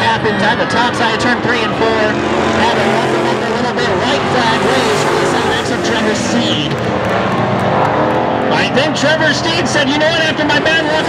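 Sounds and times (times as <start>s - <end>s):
stock car engines racing: 0.0s - 11.0s.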